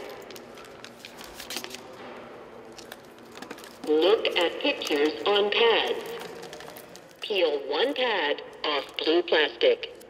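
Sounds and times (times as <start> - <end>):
plastic packaging crinkling and tearing: 0.0 - 7.2.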